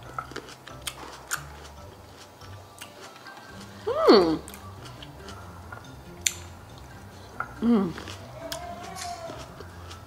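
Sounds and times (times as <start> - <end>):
wet chewing: 0.0 - 10.0.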